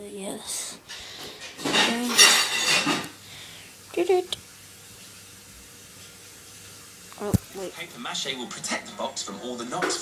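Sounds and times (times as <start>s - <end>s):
person speaking: 7.2s - 7.8s.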